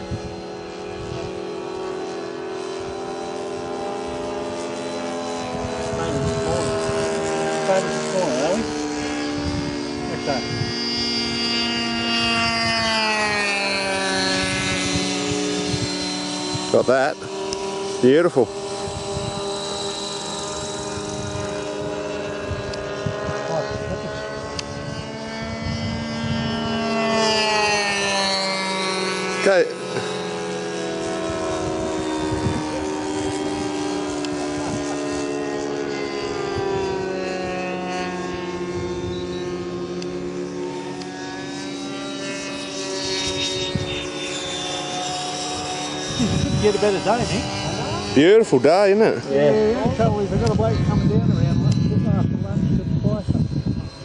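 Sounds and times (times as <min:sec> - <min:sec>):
electric ducted fan whining: 0:00.0 - 0:54.0.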